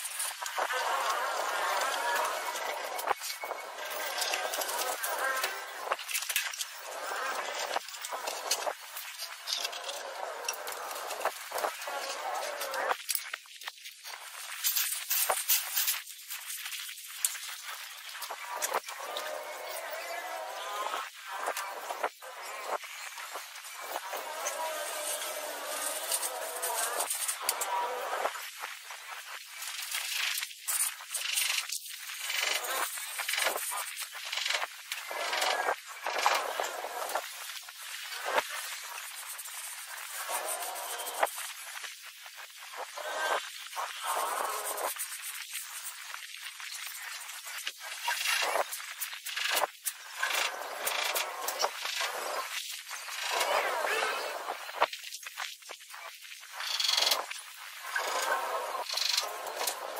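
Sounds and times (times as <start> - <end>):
people talking: 53.3 - 54.5.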